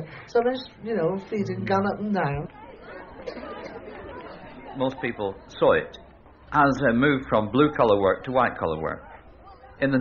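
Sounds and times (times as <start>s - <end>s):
murmur of many voices: 0.0s - 10.0s.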